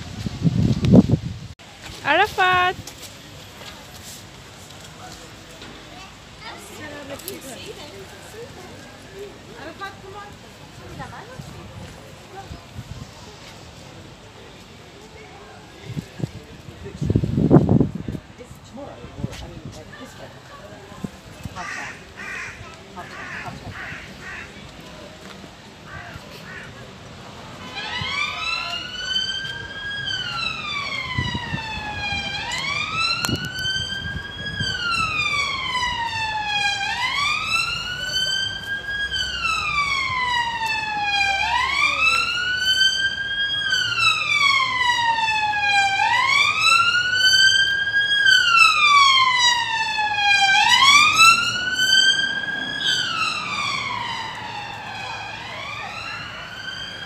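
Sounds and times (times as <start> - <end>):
emergency vehicle siren wailing: 27.5 - 57.0.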